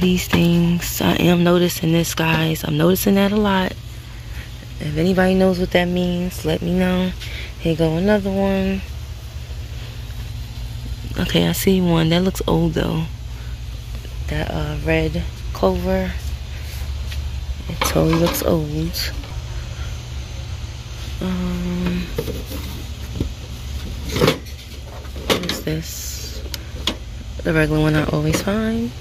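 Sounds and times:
faint hum: 0.0 - 29.0
low background rumble: 0.0 - 29.0.

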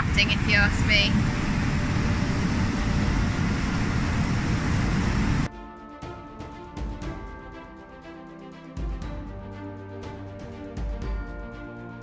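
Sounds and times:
music: 5.5 - 12.0.

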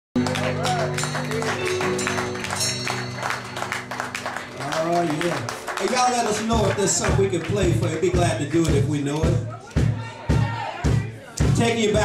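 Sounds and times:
keyboard and bass chords: 0.2 - 9.4
man talking: 4.6 - 9.5, 11.4 - 12.0
drum and cymbal hits: 6.5 - 12.0.

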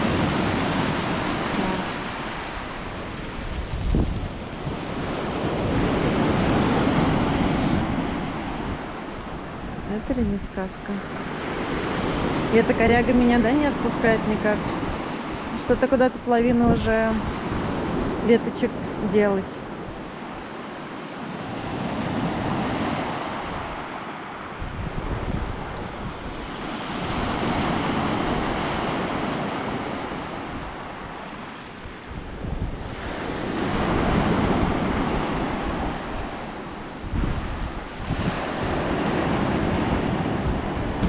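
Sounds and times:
waves washing on pebble beach: 0.0 - 3.8, 20.1 - 41.0.

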